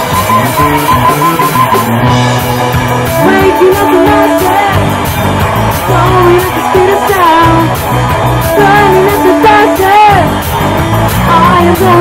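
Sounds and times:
bass guitar: 0.0 - 12.0
drums with cymbals: 0.0 - 12.0
electric guitar: 0.0 - 12.0.

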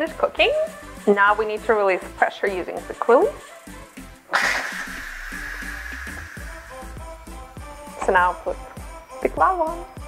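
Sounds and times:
background music: 0.0 - 10.0
steam hissing from valve: 4.3 - 7.2.

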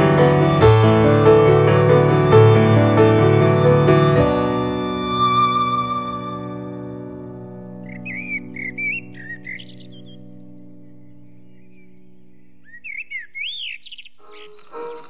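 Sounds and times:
held music chord: 0.0 - 7.8
dull narrow music: 0.0 - 12.7, 14.2 - 15.0
birds chirping: 7.8 - 15.0.

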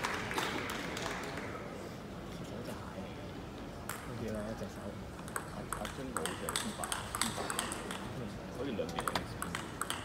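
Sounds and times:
table tennis ball clicking: 5.3 - 8.0, 9.0 - 10.0.

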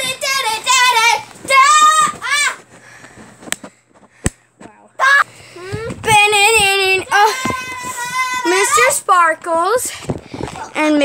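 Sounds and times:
girl singing high notes: 6.1 - 9.2.

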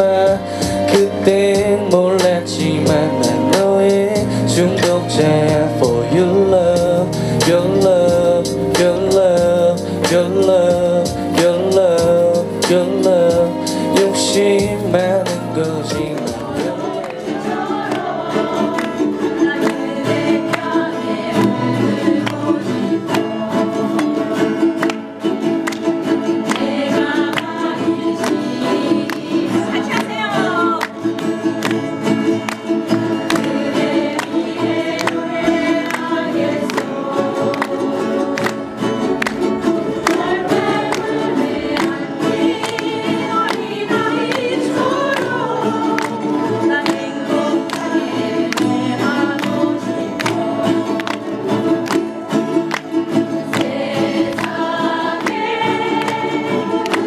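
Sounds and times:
group of voices singing: 0.0 - 57.0
ukulele and guitar strumming: 0.0 - 57.0
audience clapping along: 15.2 - 57.0.

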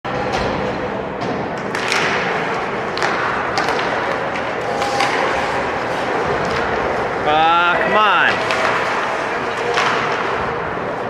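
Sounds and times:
hockey sticks and puck clacking: 0.1 - 11.0
skates scraping on ice: 1.7 - 11.0
arena crowd noise: 5.6 - 11.0.

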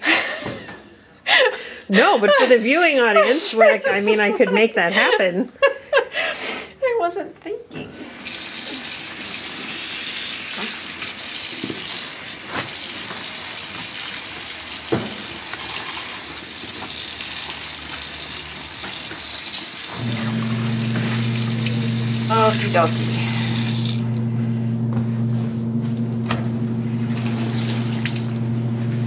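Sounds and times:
tap water running into a sink: 8.0 - 24.3, 25.9 - 28.8
steady low hum: 20.0 - 29.0.

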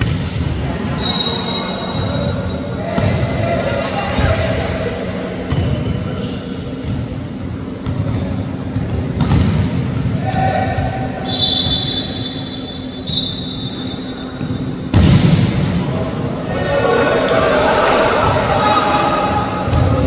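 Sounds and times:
sharp volleyball hit: 0.0 - 0.5, 7.8 - 10.9, 14.3 - 15.9
players' voices: 0.0 - 20.0
steady hum: 0.0 - 20.0.

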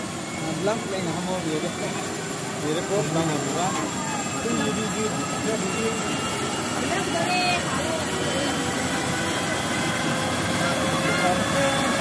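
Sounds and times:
helicopter turbine and rotor noise: 0.0 - 12.0.

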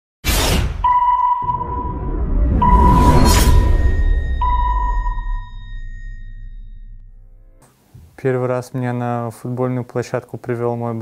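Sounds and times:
sudden whoosh: 0.2 - 7.6
low rumble: 1.4 - 7.6
high ping-like tone: 2.6 - 7.6.

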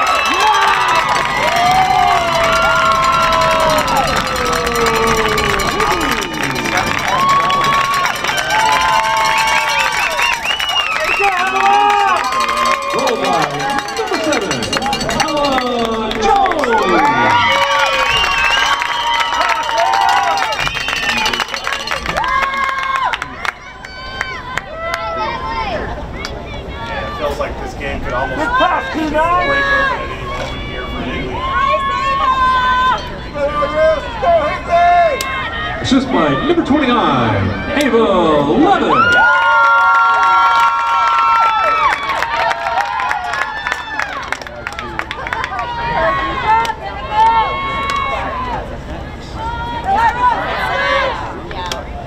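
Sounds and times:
crowd cheering and shouting: 0.0 - 52.0.

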